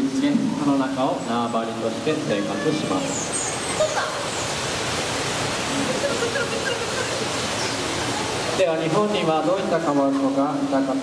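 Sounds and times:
running water rushing: 0.0s - 11.0s.

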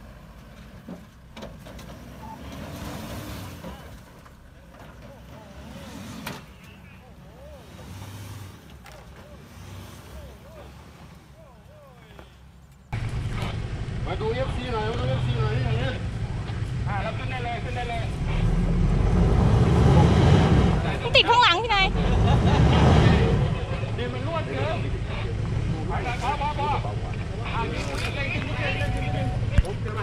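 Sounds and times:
car engine revving: 1.6s - 11.8s, 13.0s - 30.0s
people calling: 3.5s - 12.9s, 20.9s - 30.0s.

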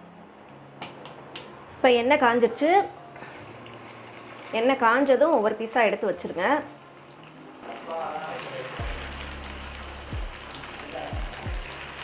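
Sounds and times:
woman talking: 1.8s - 3.0s
water hissing in frying pan: 3.2s - 12.0s.

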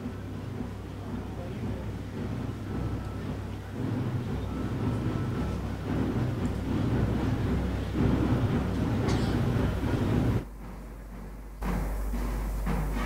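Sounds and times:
muffled band drums: 0.0s - 13.0s.

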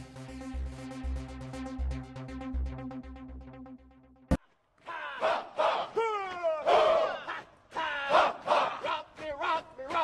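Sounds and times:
group of voices shouting: 4.8s - 10.0s.

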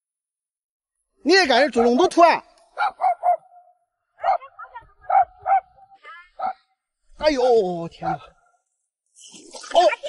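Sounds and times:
dogs barking: 1.8s - 2.1s, 2.8s - 6.7s, 8.0s - 8.4s.

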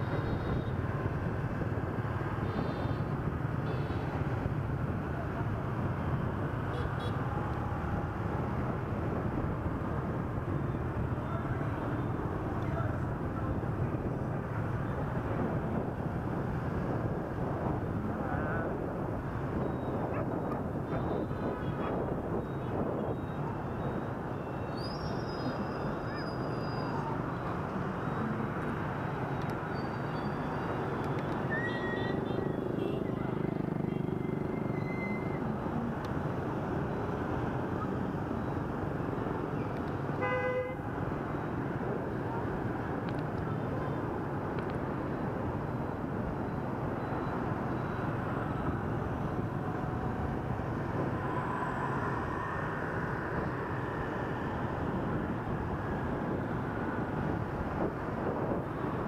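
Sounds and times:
city traffic noise: 0.0s - 59.0s.

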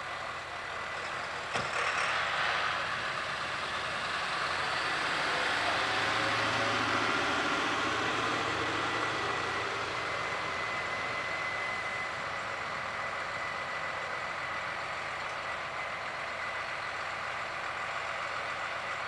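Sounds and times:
heavy truck engine running: 0.0s - 19.0s
road and tyre noise: 0.0s - 19.0s.

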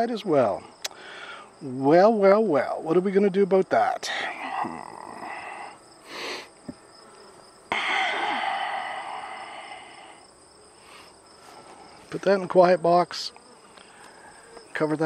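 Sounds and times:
honeybees buzzing: 0.0s - 15.0s.

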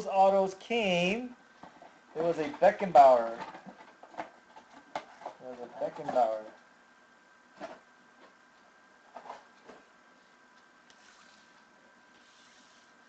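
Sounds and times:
faint electronic whine: 0.0s - 13.0s.

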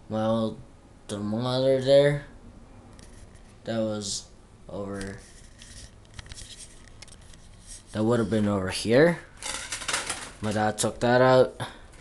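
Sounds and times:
camera handling rustle: 5.0s - 8.0s.

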